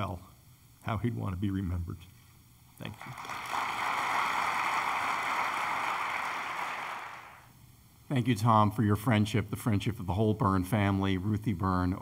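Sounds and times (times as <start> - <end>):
audience applauding: 2.9 - 7.4.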